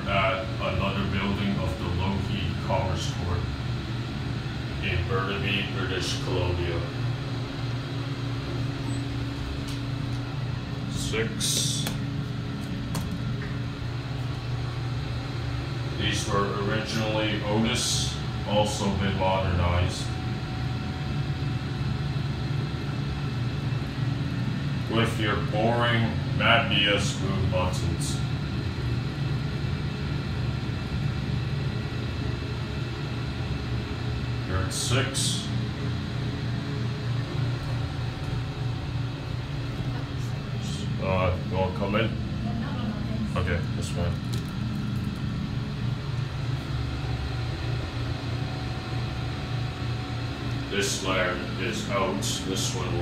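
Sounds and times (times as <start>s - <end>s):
elevator hum: 0.0s - 53.0s.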